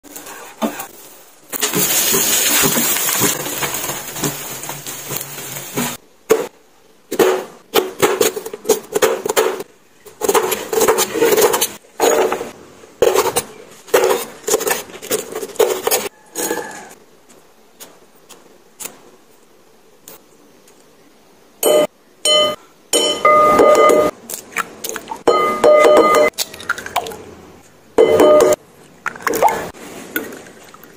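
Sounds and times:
oil sizzling: 0:01.0 - 0:06.0.

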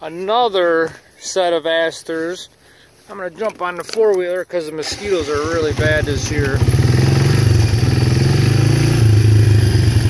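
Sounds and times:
quad bike engine droning: 0:04.8 - 0:10.0.

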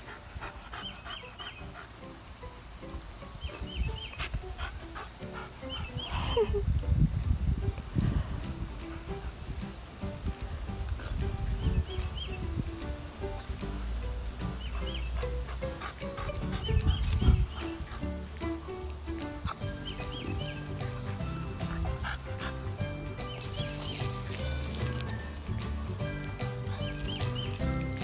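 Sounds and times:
faint hiss: 0:00.0 - 0:28.0
low rumbles and thumps: 0:06.6 - 0:11.8.

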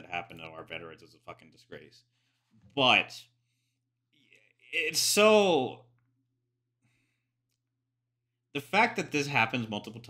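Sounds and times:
faint breath: 0:02.0 - 0:02.6, 0:03.4 - 0:04.0, 0:06.8 - 0:07.5.

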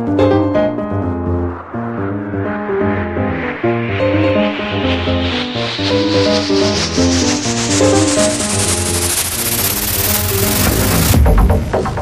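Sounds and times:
noise sweep rising in pitch: 0:00.0 - 0:12.0
techno music: 0:09.8 - 0:12.0.

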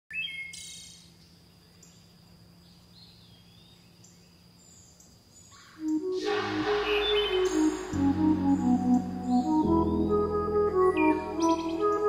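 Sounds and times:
music: 0:05.8 - 0:12.0.

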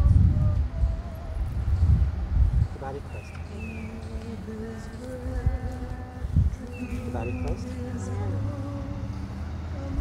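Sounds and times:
wind thumps on microphone: 0:00.0 - 0:08.6.

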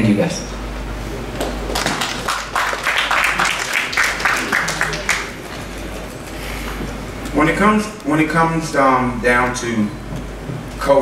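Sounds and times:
audience applause: 0:01.2 - 0:07.0.

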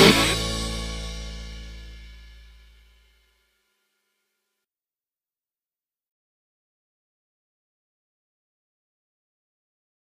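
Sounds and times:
rock song final chord: 0:00.0 - 0:02.8.

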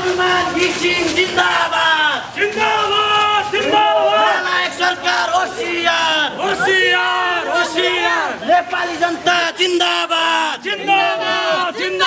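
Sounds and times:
crowd shouting slogans: 0:00.0 - 0:12.0.

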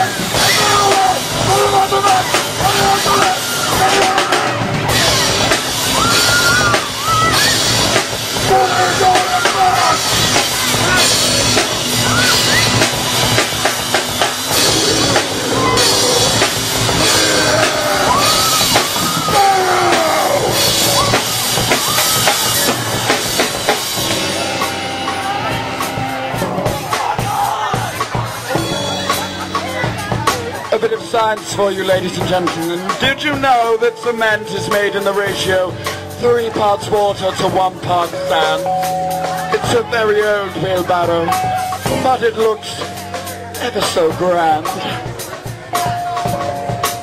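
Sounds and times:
live rock band playing: 0:00.0 - 0:47.0.

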